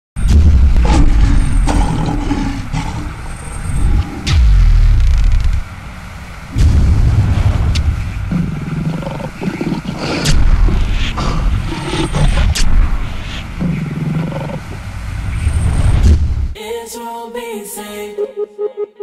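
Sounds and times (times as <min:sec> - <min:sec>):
heavy low rumbling: 0:00.2 - 0:16.6
sharp cinematic hits: 0:00.2 - 0:16.6.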